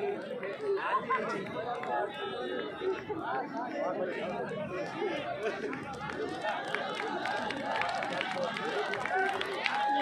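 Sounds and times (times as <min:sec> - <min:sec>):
crowd talking and calling out: 0:00.0 - 0:10.0.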